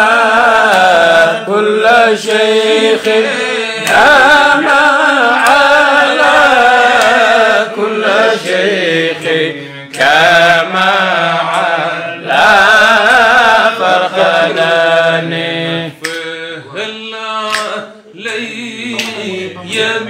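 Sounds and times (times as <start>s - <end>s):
men chanting devotional refrain: 0.0s - 20.0s.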